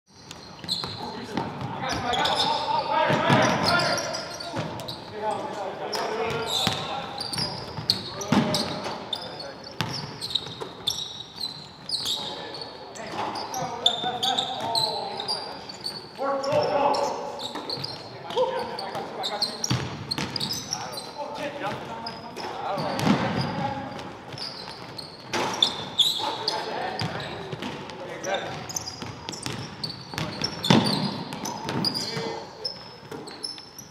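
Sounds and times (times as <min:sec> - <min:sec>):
sneaker squeaks: 0:00.1 - 0:33.9
players calling out: 0:00.6 - 0:33.6
basketball bouncing: 0:06.3 - 0:08.9, 0:09.8 - 0:10.6, 0:19.7 - 0:20.4, 0:22.8 - 0:24.4, 0:28.5 - 0:32.4.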